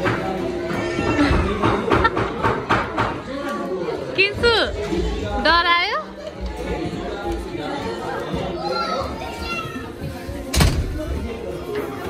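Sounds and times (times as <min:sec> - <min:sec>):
adult chatter: 0:00.0 - 0:12.0
young children's voices: 0:08.5 - 0:10.0.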